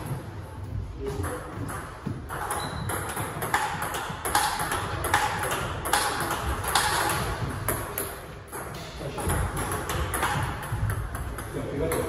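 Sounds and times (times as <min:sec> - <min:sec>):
table tennis ball hits: 0:01.1 - 0:12.0.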